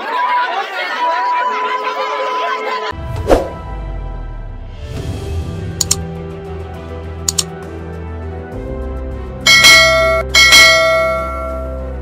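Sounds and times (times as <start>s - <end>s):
background music: 2.9s - 12.0s
bright bell chimes: 9.5s - 11.8s.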